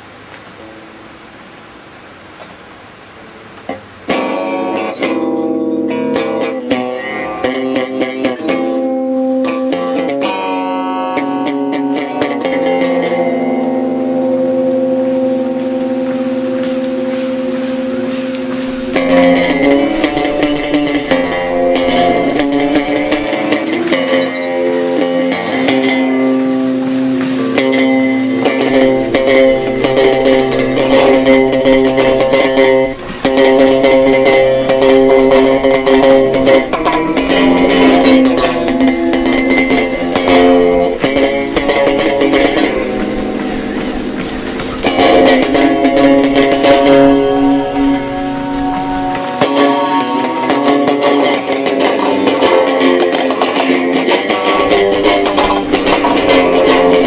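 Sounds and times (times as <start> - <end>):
electric guitar playing: 3.3 - 57.0.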